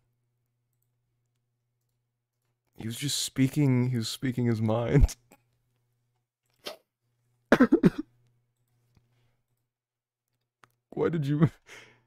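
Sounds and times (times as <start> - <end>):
person coughing: 7.5 - 8.1.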